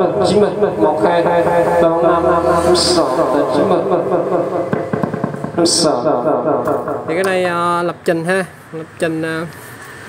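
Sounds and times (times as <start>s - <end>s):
man's voice through echoing loudspeaker: 0.0s - 9.6s.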